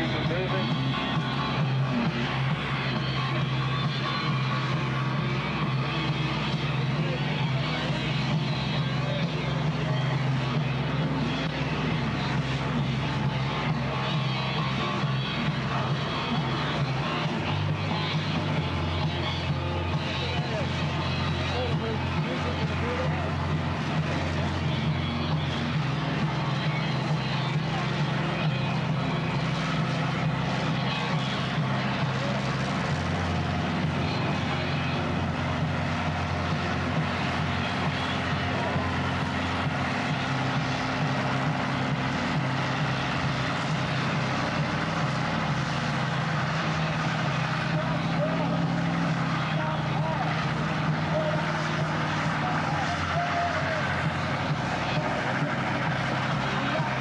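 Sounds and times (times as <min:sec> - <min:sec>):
car engine at high revs: 0:00.0 - 0:57.0
tyres spinning on pavement: 0:00.0 - 0:57.0.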